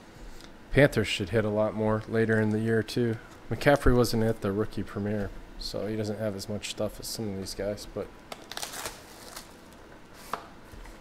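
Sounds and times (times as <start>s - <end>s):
handling cardboard box and foil: 8.4s - 10.4s.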